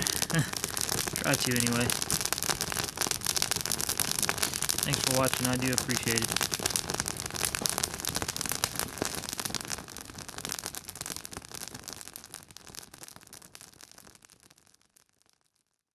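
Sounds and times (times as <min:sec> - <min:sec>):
grass fire crackling: 0:00.0 - 0:15.5.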